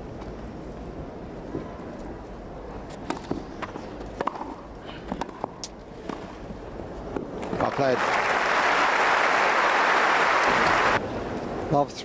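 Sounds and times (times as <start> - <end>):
tennis ball bouncing: 2.9 - 6.3
tennis ball hit by rackets: 3.0 - 6.2.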